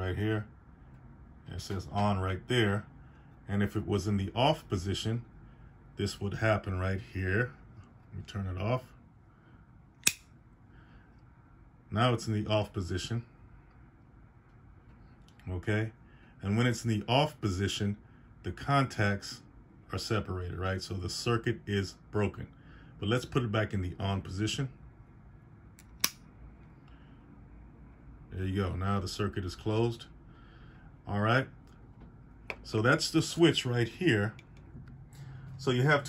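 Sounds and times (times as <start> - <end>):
circuit breaker switch snapping: 10.0 - 10.3, 25.8 - 26.2.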